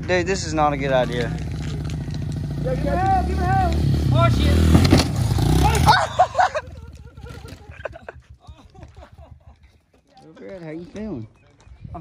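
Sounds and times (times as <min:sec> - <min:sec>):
motorbike engine revving: 0:00.4 - 0:07.9
people shouting: 0:05.6 - 0:06.5.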